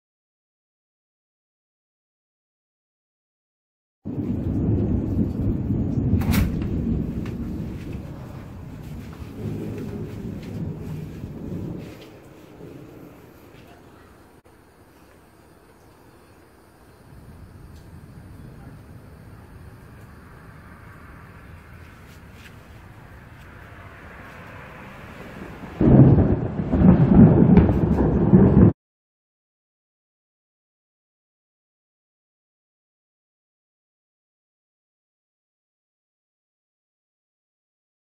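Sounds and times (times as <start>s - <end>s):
thunder rumbling: 4.1s - 28.8s.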